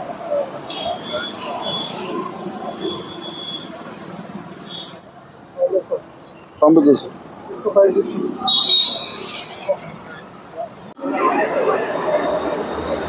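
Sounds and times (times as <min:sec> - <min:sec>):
street traffic noise: 0:00.0 - 0:13.0.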